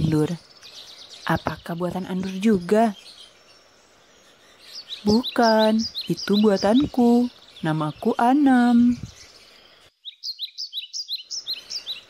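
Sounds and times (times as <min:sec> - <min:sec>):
small bird chirping rapidly: 0:00.0 - 0:12.0.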